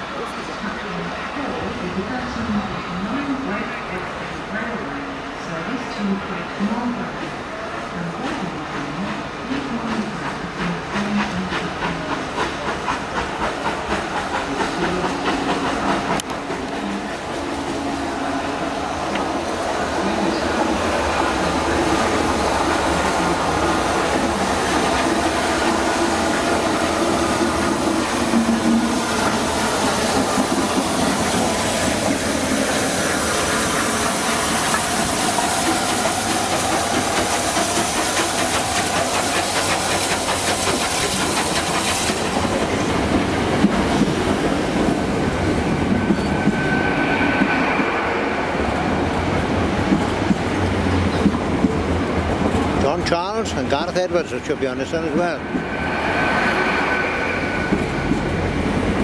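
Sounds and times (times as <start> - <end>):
diesel train passing: 0.0 - 59.0
steam hissing: 10.0 - 51.1, 53.4 - 59.0.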